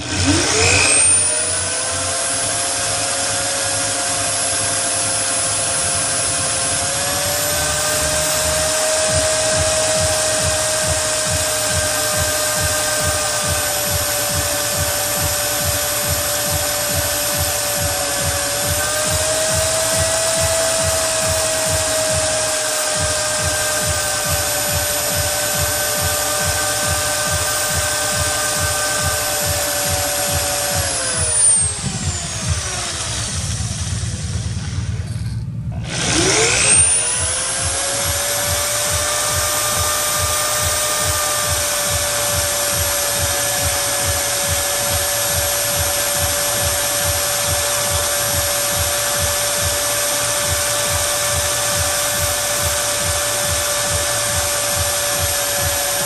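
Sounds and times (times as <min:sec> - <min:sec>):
electric drill grinding glass: 0:00.0 - 0:56.0.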